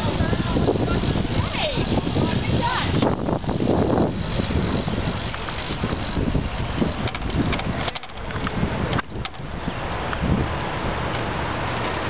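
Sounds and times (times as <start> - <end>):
bicycles rolling on road: 0.0 - 12.0
wind rushing over microphone: 0.0 - 12.0.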